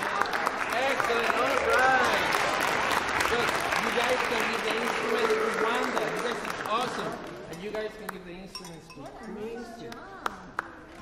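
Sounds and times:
chatter of children and adults: 8.8s - 11.0s.

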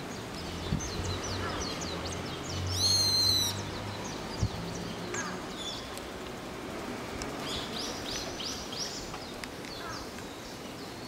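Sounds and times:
small birds chirping: 0.0s - 6.2s, 7.3s - 11.0s.

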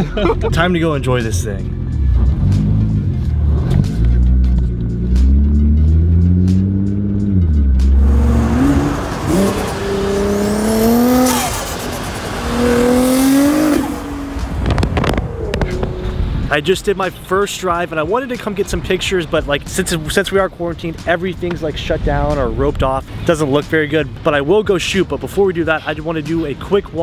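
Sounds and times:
car engine revving and accelerating: 0.0s - 16.5s
wind and road noise: 0.0s - 27.0s.

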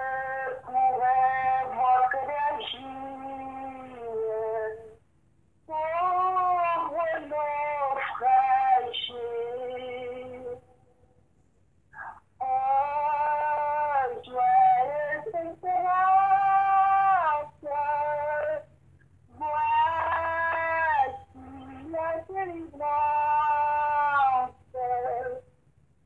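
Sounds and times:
high voice singing unaccompanied: 0.0s - 5.0s, 5.7s - 10.7s, 12.0s - 18.7s, 19.3s - 25.6s.

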